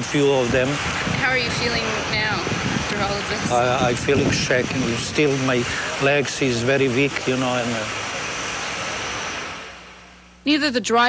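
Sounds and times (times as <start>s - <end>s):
traffic passing: 0.0s - 10.6s.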